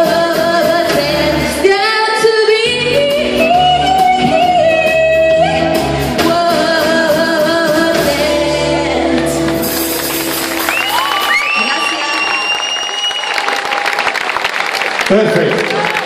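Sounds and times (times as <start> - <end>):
woman singing into microphone: 0.0 - 9.4
instrumental accompaniment: 0.0 - 12.6.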